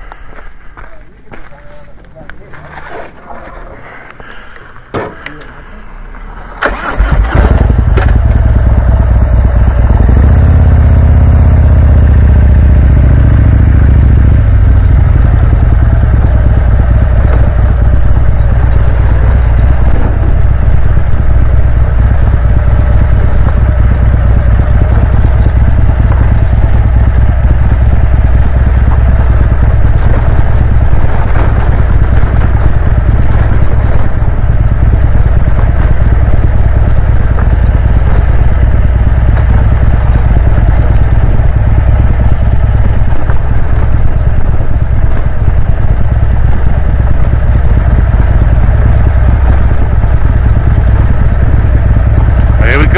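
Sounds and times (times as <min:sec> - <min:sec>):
motorcycle engine: 0:02.6 - 0:52.9.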